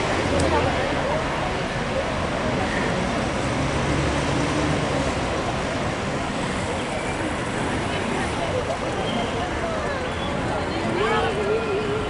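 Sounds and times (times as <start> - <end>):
faint voices: 0.0 - 12.0
street traffic engine drone: 0.0 - 12.0.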